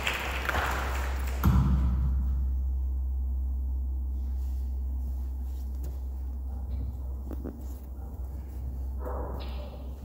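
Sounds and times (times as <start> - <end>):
steady low hum: 0.0 - 10.0
soft rustle: 4.1 - 9.0.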